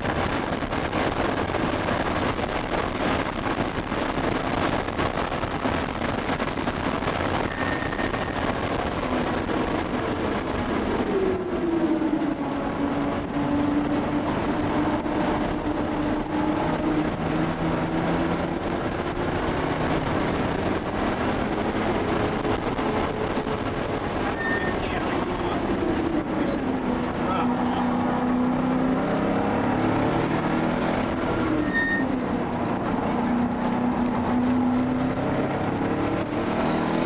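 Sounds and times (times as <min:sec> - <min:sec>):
car engine running: 0:00.0 - 0:37.0
road and wind noise: 0:00.0 - 0:37.0.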